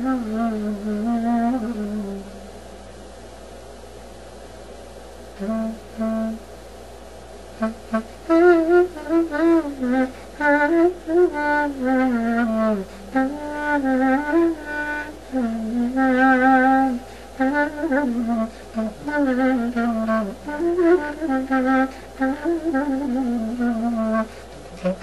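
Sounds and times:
solo clarinet melody: 0:00.0 - 0:02.4, 0:05.4 - 0:06.5, 0:07.5 - 0:25.0.

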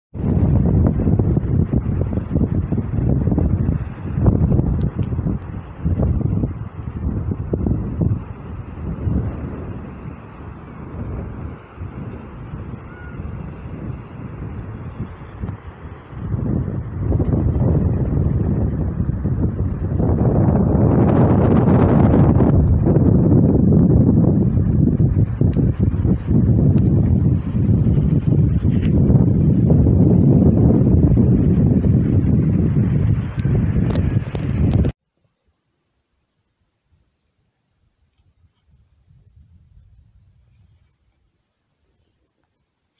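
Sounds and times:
wind buffeting microphone: 0:00.1 - 0:35.0, 0:38.2 - 0:41.2.

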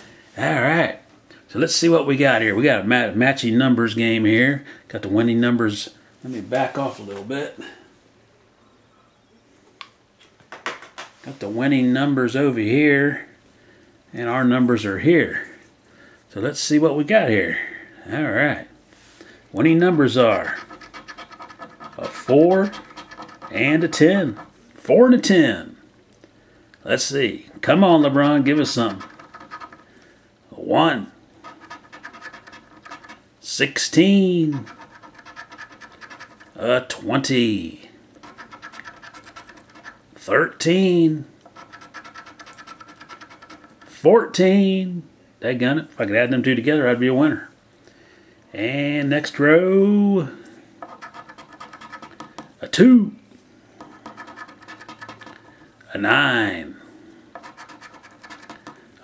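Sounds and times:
scratching lottery ticket: 0:19.8 - 0:24.6, 0:27.6 - 0:29.9, 0:31.4 - 0:33.2, 0:34.5 - 0:36.6, 0:38.2 - 0:40.0, 0:41.5 - 0:44.0, 0:50.8 - 0:52.4, 0:53.8 - 0:55.6, 0:57.4 - 0:58.8.

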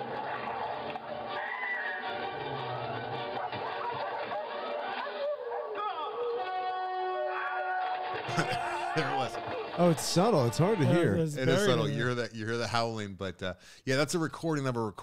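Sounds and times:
dogs howling and yelping: 0:00.0 - 0:06.4.

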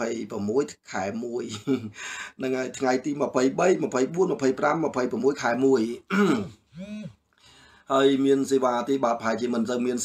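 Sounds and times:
man clearing his throat: 0:06.1 - 0:07.2.

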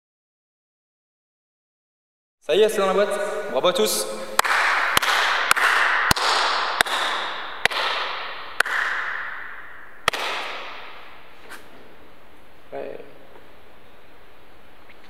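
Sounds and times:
hand claps echoing in a hall: 0:04.0 - 0:11.3.

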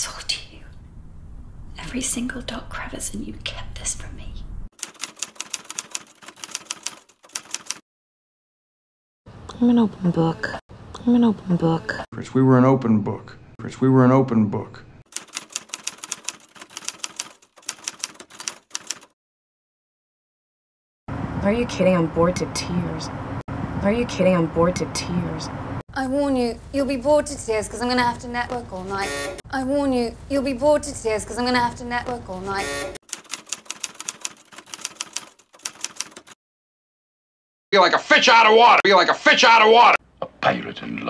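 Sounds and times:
keyboard typing clicks: 0:04.8 - 0:07.8, 0:15.2 - 0:19.1, 0:33.1 - 0:36.4
typewriter keys clacking: 0:04.8 - 0:07.8, 0:15.1 - 0:19.1, 0:33.0 - 0:36.4.

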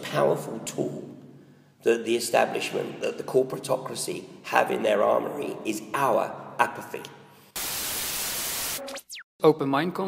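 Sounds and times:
white-noise static burst: 0:07.6 - 0:09.2.

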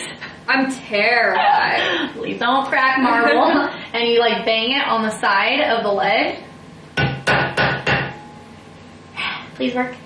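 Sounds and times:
jar lid banging on countertop: 0:07.0 - 0:08.2.

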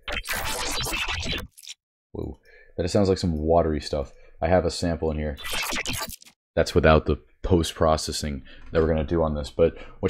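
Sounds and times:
watery stuttering glitch texture: 0:00.0 - 0:01.8, 0:05.4 - 0:06.4.

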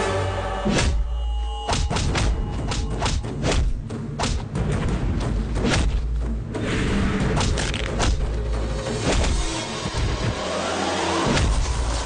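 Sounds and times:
action film score: 0:00.0 - 0:12.0.

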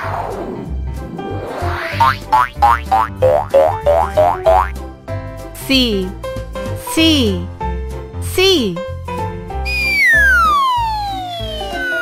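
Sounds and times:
children's background music: 0:00.4 - 0:12.0
cartoon boing sounds: 0:02.0 - 0:04.8.

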